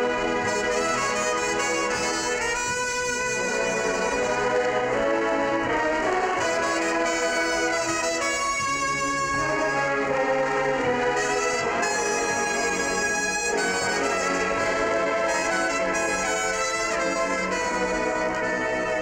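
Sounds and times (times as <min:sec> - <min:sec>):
marching band brass: 0:00.0 - 0:19.0
trumpet solo: 0:00.0 - 0:19.0.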